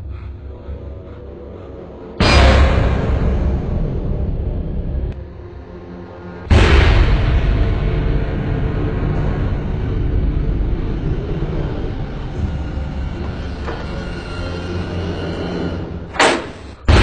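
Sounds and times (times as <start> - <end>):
loud bassy rumble: 0.0 - 17.0.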